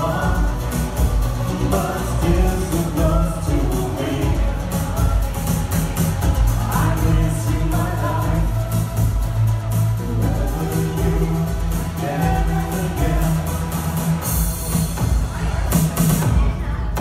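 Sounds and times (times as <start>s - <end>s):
people singing: 0.0s - 16.8s
synth-pop band music: 0.0s - 17.0s.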